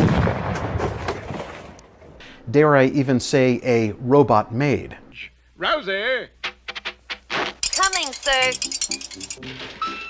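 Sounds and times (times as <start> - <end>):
explosion with deep rumble: 0.0 - 1.7.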